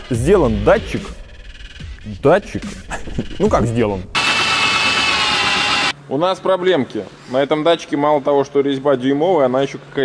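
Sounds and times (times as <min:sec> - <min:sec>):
mechanical noise with high whine: 0:00.0 - 0:06.9.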